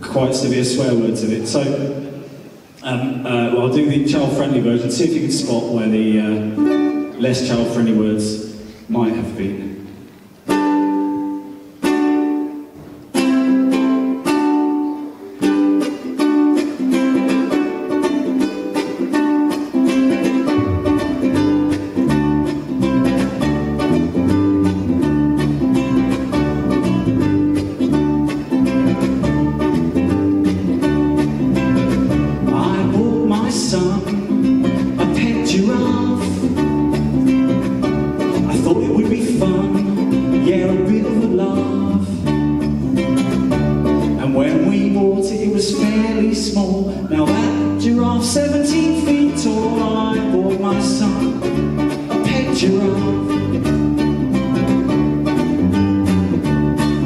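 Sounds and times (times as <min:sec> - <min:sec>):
ukulele strumming: 0:00.0 - 0:57.0
electric bass guitar: 0:19.8 - 0:57.0.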